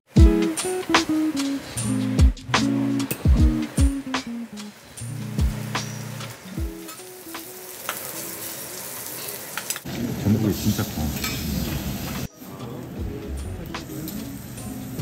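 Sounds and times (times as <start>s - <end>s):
background music with a beat: 0.1s - 7.6s, 12.3s - 15.0s
shellfish sizzling on a hot griddle: 4.7s - 12.3s.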